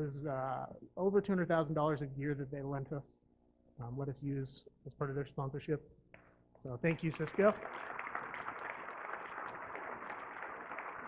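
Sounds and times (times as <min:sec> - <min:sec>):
audience applauding: 0:07.1 - 0:11.0.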